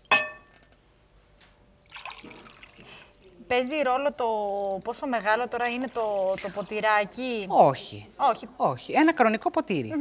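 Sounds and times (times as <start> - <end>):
glass pitcher clinking glass: 0.0 - 0.6, 1.8 - 2.9
water pouring into glass: 1.8 - 3.1.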